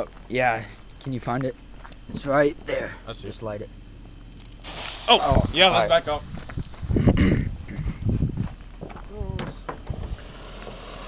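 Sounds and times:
footsteps crunching on gravel: 0.0s - 2.3s, 4.0s - 6.9s, 8.2s - 9.2s
firework fountain hissing: 4.6s - 6.3s, 10.0s - 11.0s.

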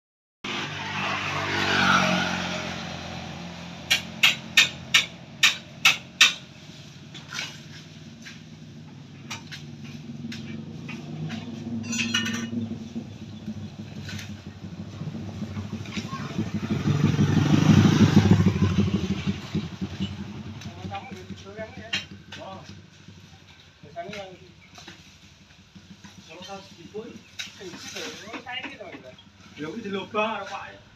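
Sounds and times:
vehicles passing on road: 0.4s - 30.9s
sharp knocks of cane cutting: 3.9s - 6.5s.

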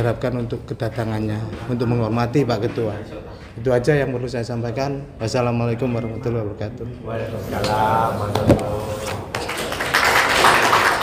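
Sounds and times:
people applauding: 7.6s - 11.0s.

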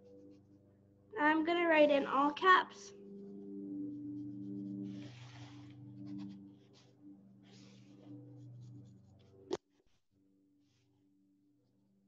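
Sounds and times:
pencil scratching on paper: 0.1s - 0.6s, 3.2s - 10.0s.

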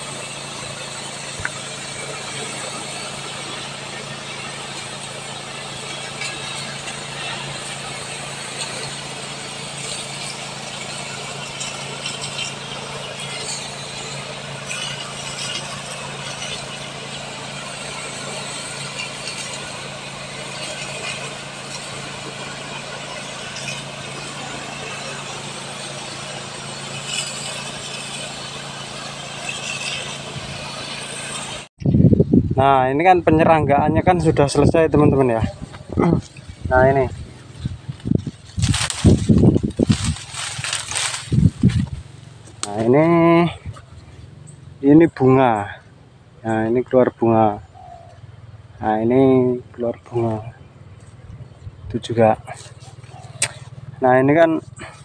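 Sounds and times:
high-pressure spray jet hissing: 0.0s - 31.7s, 34.4s - 44.5s
power sprayer engine running: 0.0s - 31.8s, 33.0s - 55.0s.

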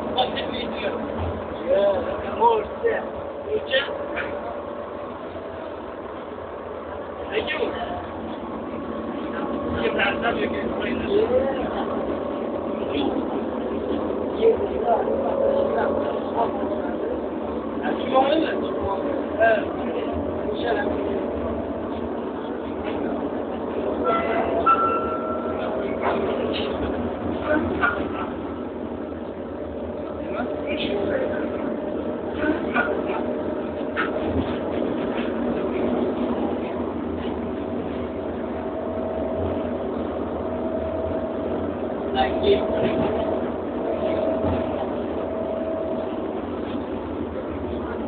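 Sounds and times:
train rumble: 0.0s - 48.0s
high steady whine: 27.8s - 48.0s.

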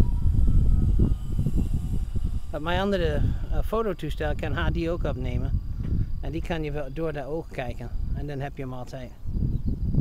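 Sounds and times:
model plane motor whine: 0.0s - 10.0s
wind rumbling on microphone: 0.0s - 10.0s.

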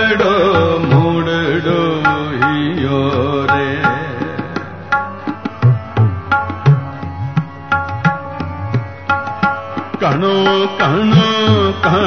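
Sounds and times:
person singing ornamented melody: 0.0s - 4.4s, 10.0s - 12.0s.

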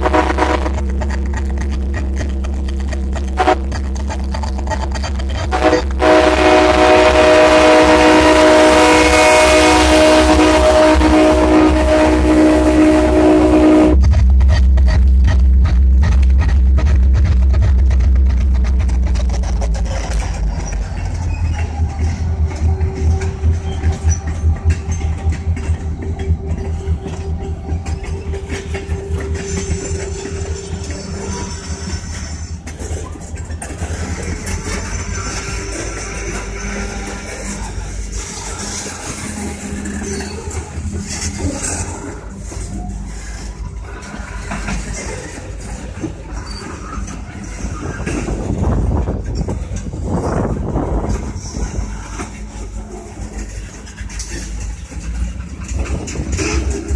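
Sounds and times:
locomotive air horn: 0.0s - 1.1s, 3.2s - 4.0s, 5.4s - 14.1s, 21.2s - 32.8s, 33.6s - 42.6s
diesel engines rumbling: 0.0s - 56.9s
train wheels clickety-clack: 0.0s - 56.9s.

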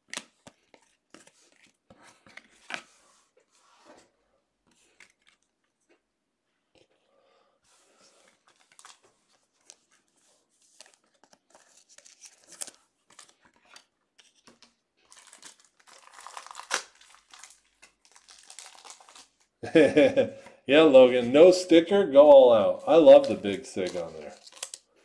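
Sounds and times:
foil wrappers torn and crinkled: 15.0s - 19.5s, 23.1s - 24.9s.

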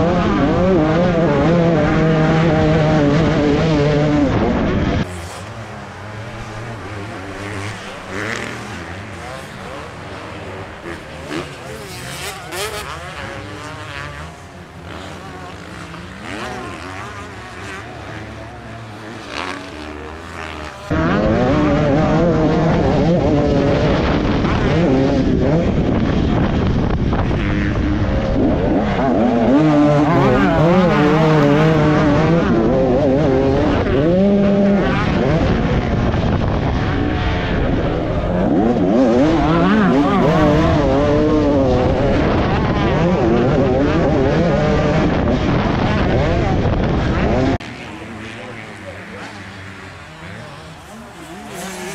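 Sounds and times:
distant motocross bike engines: 0.0s - 51.9s
two-stroke engine revving hard: 0.0s - 51.9s.

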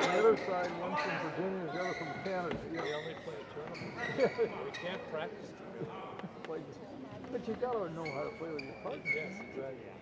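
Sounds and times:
indistinct chatter in a hall: 0.0s - 10.0s.

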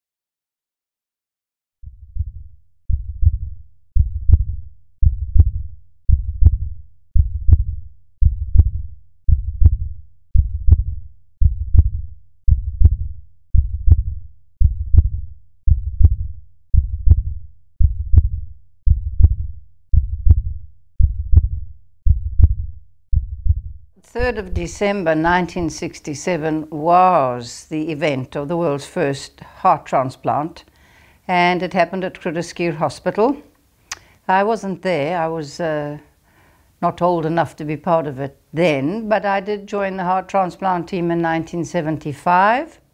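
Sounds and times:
heartbeat thumps: 1.8s - 25.8s.

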